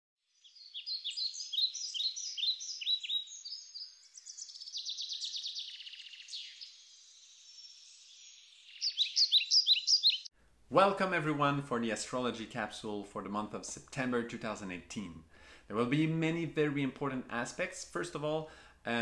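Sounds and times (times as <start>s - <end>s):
bird chirping: 0.2s - 10.3s
buzzy bird trill: 0.3s - 10.3s.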